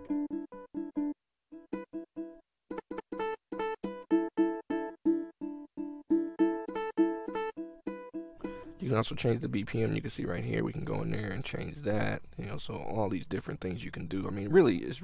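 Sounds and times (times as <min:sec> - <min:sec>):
plucked ukulele notes: 0:00.0 - 0:09.1.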